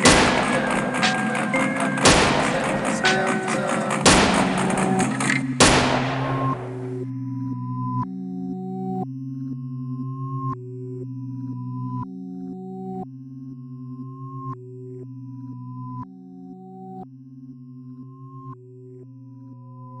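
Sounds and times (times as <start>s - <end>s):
synthesizer notes: 0.0s - 7.1s
synth bass line: 0.0s - 7.5s.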